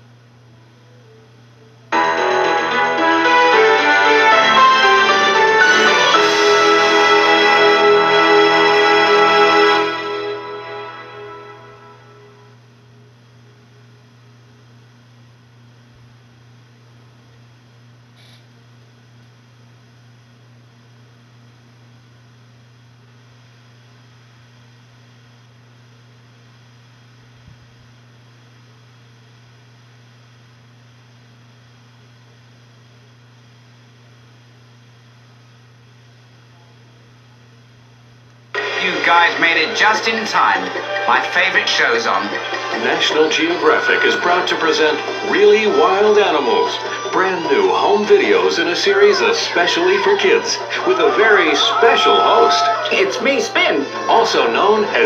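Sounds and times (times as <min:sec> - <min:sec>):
low electrical hum: 0:00.0 - 0:05.5, 0:09.8 - 0:55.0
logo music: 0:01.9 - 0:12.6, 0:38.5 - 0:49.7.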